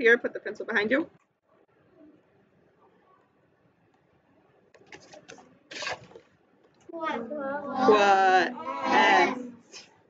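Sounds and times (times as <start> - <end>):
papery swish of card flipping: 4.9 - 6.3.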